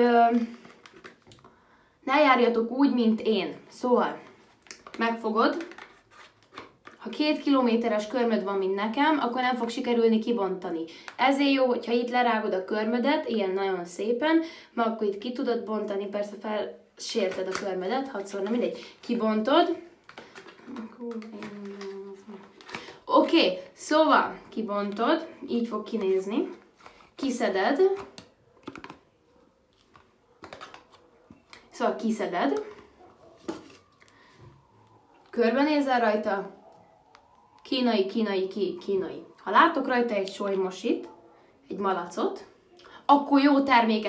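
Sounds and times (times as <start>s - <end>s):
person speaking: 20.6s - 28.2s
woman humming: 20.7s - 22.5s.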